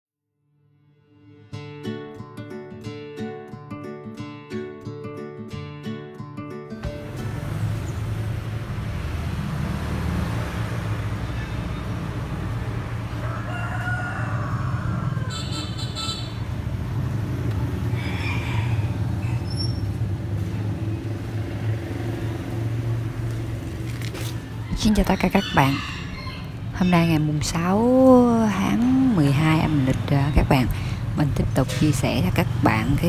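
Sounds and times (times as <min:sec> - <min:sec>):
rooster crowing: 0:13.0 - 0:16.2, 0:17.8 - 0:19.6, 0:24.5 - 0:27.1.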